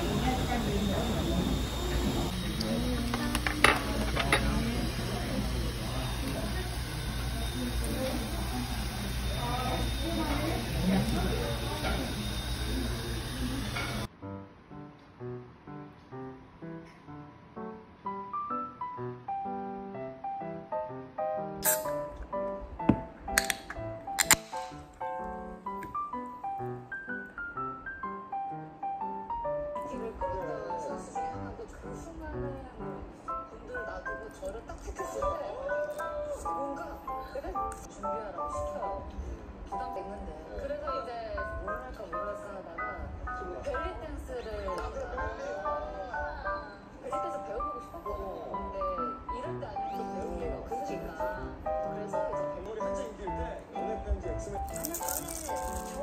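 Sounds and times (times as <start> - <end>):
murmur of voices: 0.0 - 14.1, 29.8 - 56.0
light piano music: 0.0 - 56.0
tableware clinking: 3.0 - 4.8, 21.6 - 22.1.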